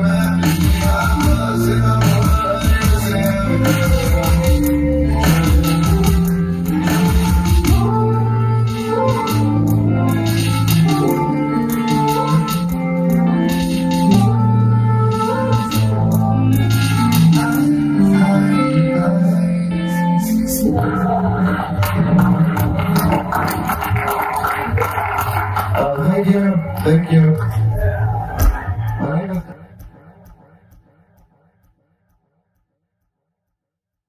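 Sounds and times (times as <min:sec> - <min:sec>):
synthesizer chords over deep bass: 0:00.0 - 0:25.9.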